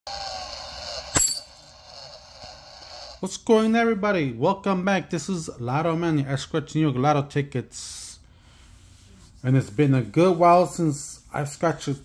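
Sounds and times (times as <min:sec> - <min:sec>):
coin clinking on cardboard: 0:01.1 - 0:01.5.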